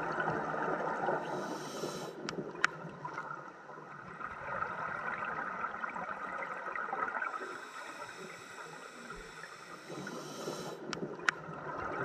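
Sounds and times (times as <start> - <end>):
exhaled bubbles hissing: 0.0 - 2.7, 4.1 - 12.0
scuba regulator breathing: 1.2 - 2.4, 7.3 - 11.0.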